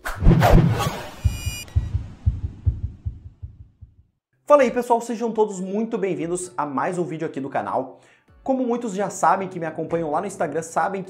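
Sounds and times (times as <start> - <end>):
rapid low pulsing beat: 0.4 - 4.1.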